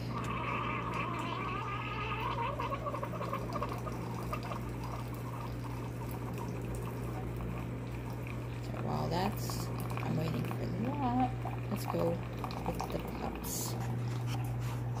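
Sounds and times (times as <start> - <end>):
coffee streaming into mug: 0.0 - 14.6
coffee machine whine: 0.0 - 15.0
steady low hum: 0.0 - 15.0.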